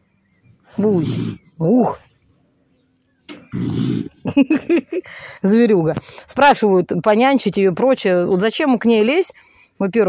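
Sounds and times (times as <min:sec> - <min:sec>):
raccoon growling: 0:00.7 - 0:02.1, 0:03.3 - 0:04.3.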